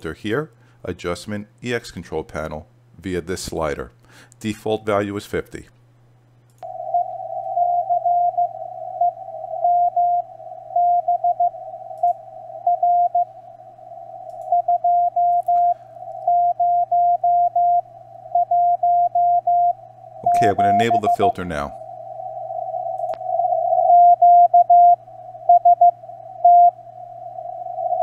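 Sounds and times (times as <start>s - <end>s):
morse code tone keyed on and off: 6.6s - 21.6s, 22.2s - 26.8s
radio receiver hiss: 20.0s - 23.7s.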